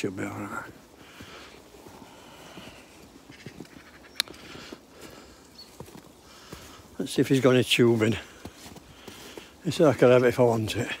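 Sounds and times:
footsteps crunching through snow: 0:00.0 - 0:11.0.

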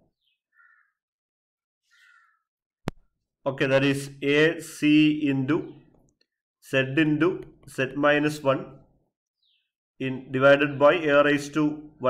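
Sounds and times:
faint bird calls: 0:00.2 - 0:01.0, 0:01.8 - 0:02.5.

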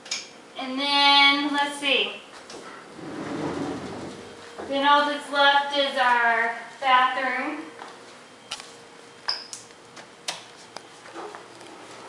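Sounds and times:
sliding door rolling on track: 0:02.9 - 0:04.4.

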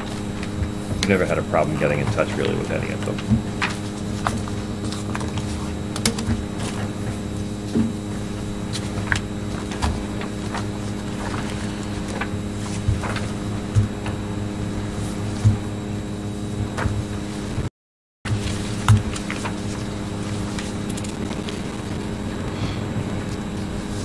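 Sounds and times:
paper rustling: 0:00.0 - 0:15.6, 0:18.3 - 0:21.6
room equipment hum: 0:00.0 - 0:17.7, 0:18.3 - 0:24.0.

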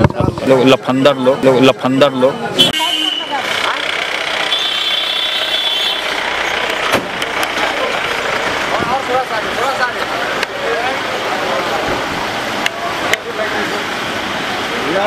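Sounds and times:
cars running slowly: 0:00.0 - 0:15.0
people's voices: 0:00.0 - 0:15.0.

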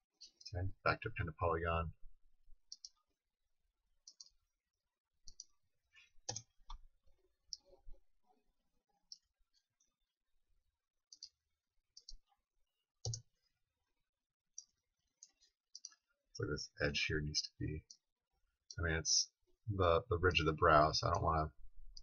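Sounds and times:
computer mouse clicking: 0:02.7 - 0:03.0, 0:04.1 - 0:04.4, 0:05.3 - 0:05.5, 0:06.3 - 0:06.8, 0:11.1 - 0:11.4, 0:13.0 - 0:13.3, 0:14.6 - 0:16.0.

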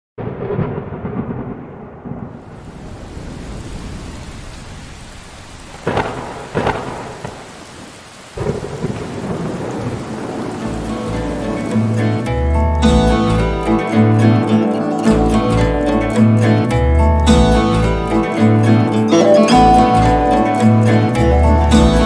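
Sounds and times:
sharp thunder cracks: 0:00.2 - 0:04.9, 0:05.6 - 0:07.8, 0:08.4 - 0:12.1
thunder rumbling: 0:00.2 - 0:13.4
heavy rain falling: 0:00.2 - 0:14.5, 0:17.4 - 0:22.0
music: 0:10.6 - 0:22.0.

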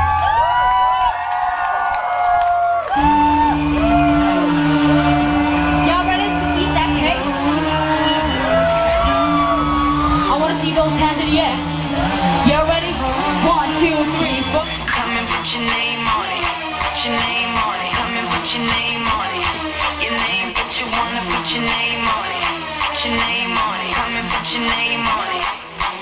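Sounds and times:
bass beat: 0:02.8 - 0:26.0
woman singing vocal runs: 0:04.0 - 0:25.6.

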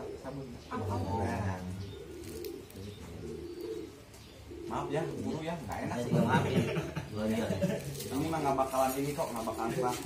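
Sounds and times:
dove cooing: 0:00.0 - 0:10.0.

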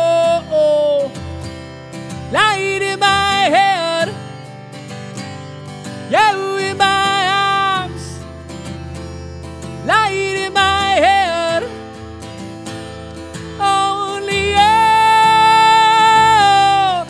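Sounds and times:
man singing: 0:00.0 - 0:01.3, 0:02.3 - 0:04.4, 0:06.0 - 0:08.3, 0:09.8 - 0:12.1, 0:13.4 - 0:17.0
strummed acoustic guitar: 0:00.0 - 0:17.0.

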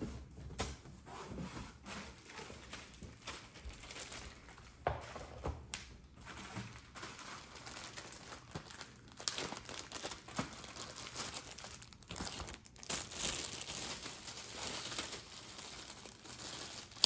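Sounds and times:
packaging crinkling and rustling: 0:02.1 - 0:17.0.

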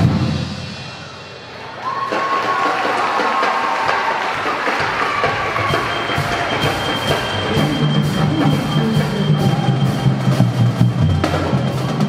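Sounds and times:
percussion ensemble playing: 0:00.0 - 0:12.0.

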